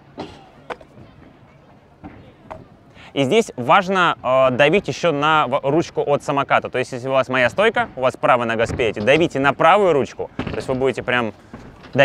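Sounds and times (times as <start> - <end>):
faint background noise: 0.0 - 12.0
scooter knocks: 0.2 - 1.3, 2.0 - 2.7.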